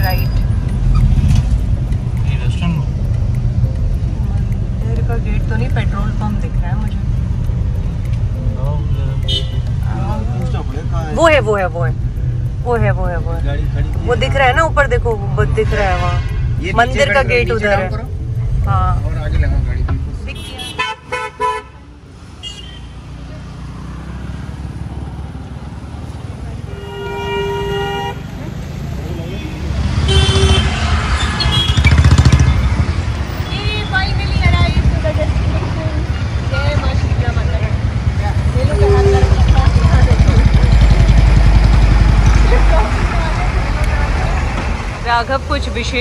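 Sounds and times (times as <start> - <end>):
low rumble of engines: 0.0 - 21.0, 21.7 - 46.0
car and motorbike horns honking: 8.8 - 9.9, 15.3 - 17.8, 20.2 - 23.1, 26.5 - 28.5, 29.1 - 35.0, 38.4 - 41.8.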